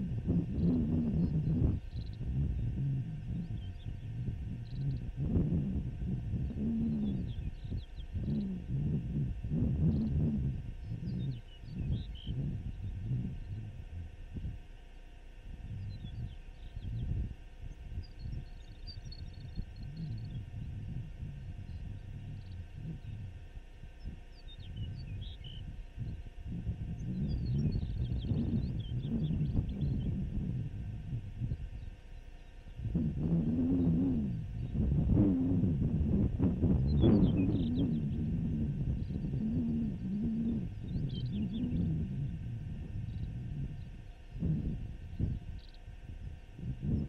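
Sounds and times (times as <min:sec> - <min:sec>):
wavering low tone: 0:00.0 - 0:47.0
wind buffeting microphone: 0:00.0 - 0:47.0.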